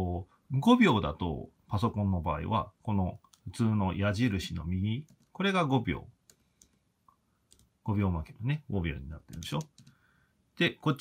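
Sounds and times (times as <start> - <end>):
laptop keys clicking: 5.0 - 5.4, 7.5 - 7.8, 9.2 - 10.0.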